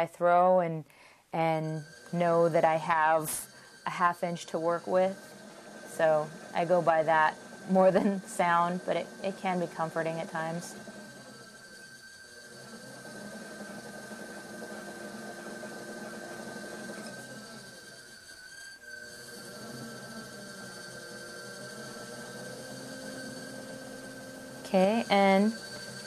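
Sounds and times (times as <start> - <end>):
pottery wheel whining: 0.0 - 26.0.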